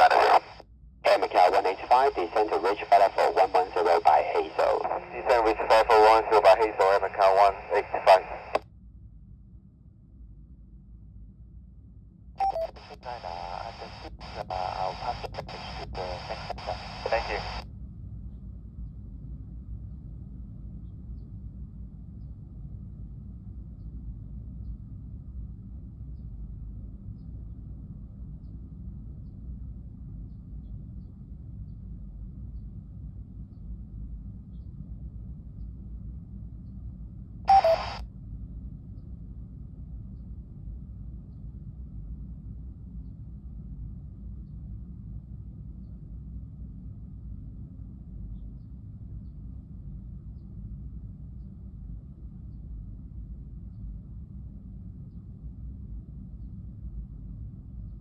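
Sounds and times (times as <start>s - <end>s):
radio voice transmission: 0.0s - 8.6s, 12.4s - 17.6s, 37.5s - 38.0s
low steady hum: 0.0s - 58.0s
short radio blip: 37.5s - 38.0s.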